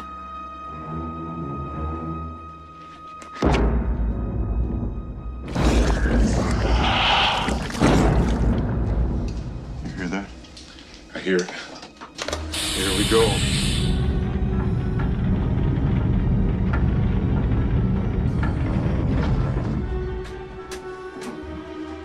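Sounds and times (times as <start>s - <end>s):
tense film music with vocal sounds: 0.0s - 22.0s
burst of hiss: 12.4s - 14.1s
steady low rumble: 14.0s - 20.2s.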